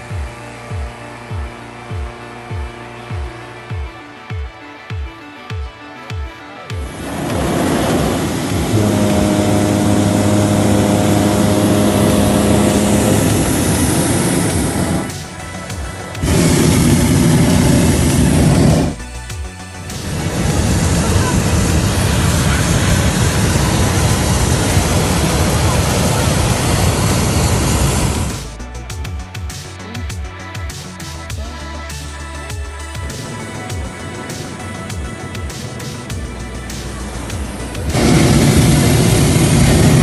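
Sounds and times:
propane burner roaring: 6.7s - 28.6s, 32.8s - 40.0s.

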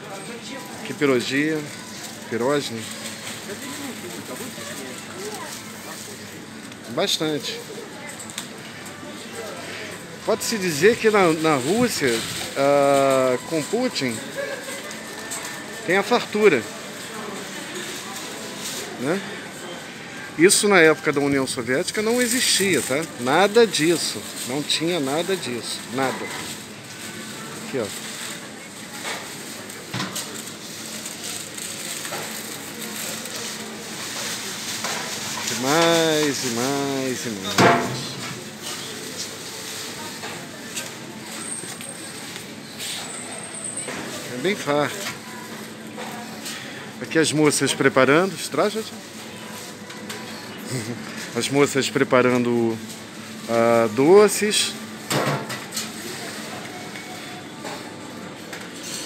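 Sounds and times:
low hum of large shop: 0.0s - 59.0s
supermarket background hiss: 0.0s - 59.0s.

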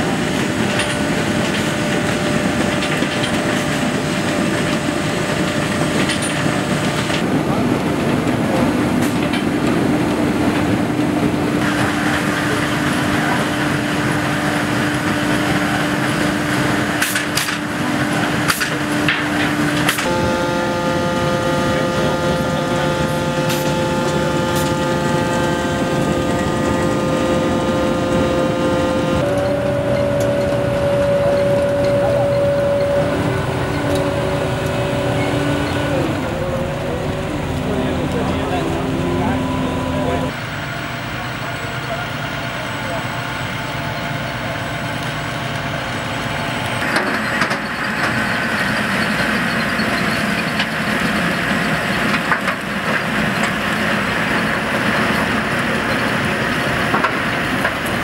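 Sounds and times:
conveyors and rollers carrying potatoes: 0.0s - 58.0s
steady machine hum: 0.0s - 58.0s.

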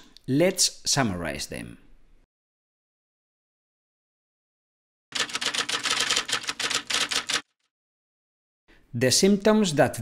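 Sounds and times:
rapid typewriter key clicks: 5.1s - 7.5s.

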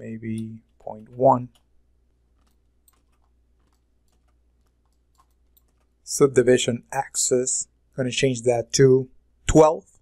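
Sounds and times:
faint keyboard clicks: 0.3s - 1.7s, 2.3s - 6.0s.

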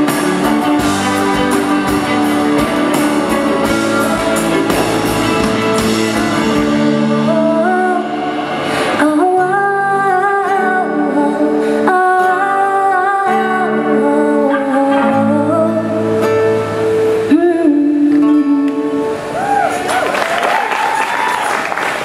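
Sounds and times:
electric and acoustic guitars: 0.0s - 22.0s
woman and man singing: 9.0s - 16.3s.

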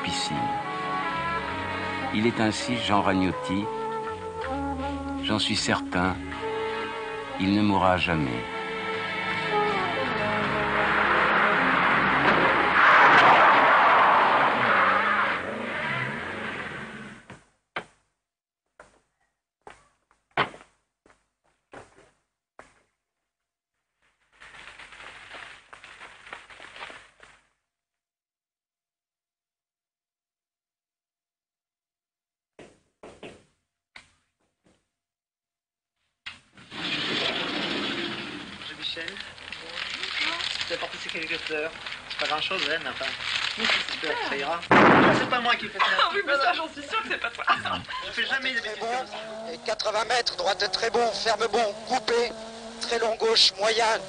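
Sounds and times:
car engine revving: 8.5s - 17.3s, 48.2s - 54.0s
cellophane rustling and crinkling: 24.0s - 27.4s, 38.4s - 44.7s
voices: 38.6s - 54.0s.

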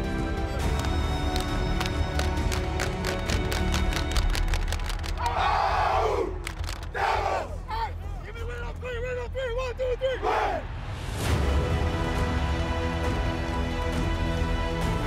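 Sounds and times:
group shouting a chant: 5.2s - 7.9s, 10.1s - 10.7s.

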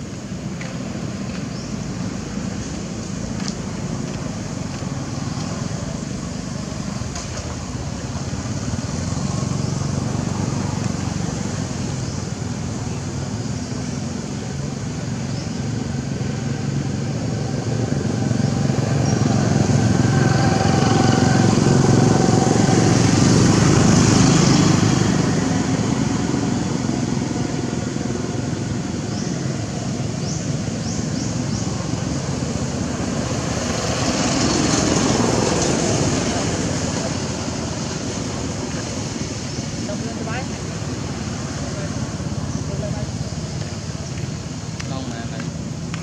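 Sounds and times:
motor engine running: 3.3s - 46.0s.

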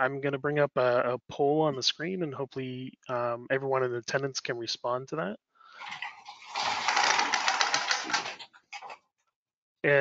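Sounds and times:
rustling and clattering: 5.8s - 9.0s.

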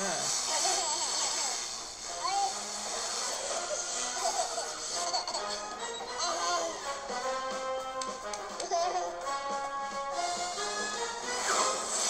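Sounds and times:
hissing laser zap: 0.0s - 5.7s, 10.3s - 12.0s.

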